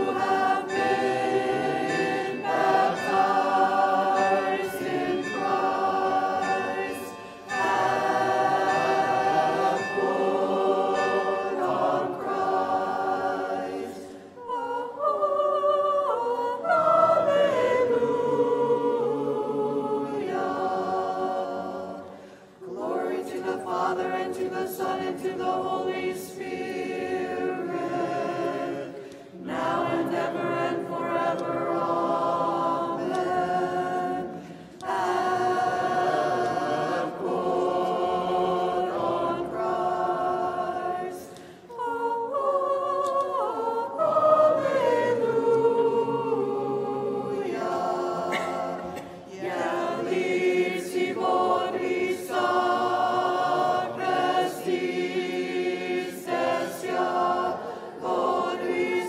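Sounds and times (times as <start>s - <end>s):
congregation and cantor chanting: 0.0s - 59.0s.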